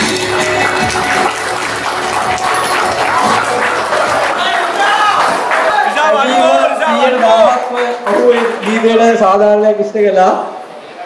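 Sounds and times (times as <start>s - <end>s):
party music over pa system: 0.0s - 6.4s
crowd applauding and cheering: 0.0s - 9.1s.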